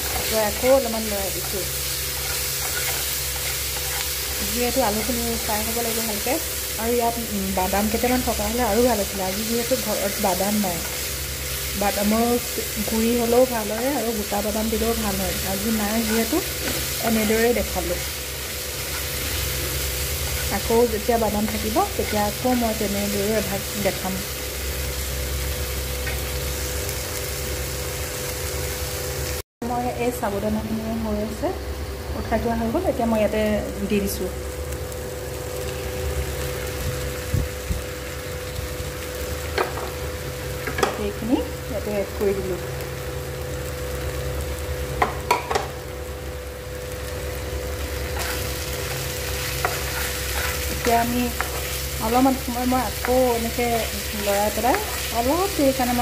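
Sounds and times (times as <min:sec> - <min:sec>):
vegetables sizzling in oil: 0:00.0 - 0:56.0
person talking: 0:29.6 - 0:34.4.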